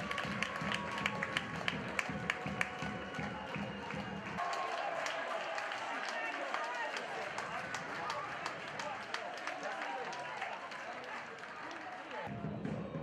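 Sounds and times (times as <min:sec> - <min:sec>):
crowd clapping: 0:00.0 - 0:13.0
crowd shouting and calling: 0:00.0 - 0:13.0.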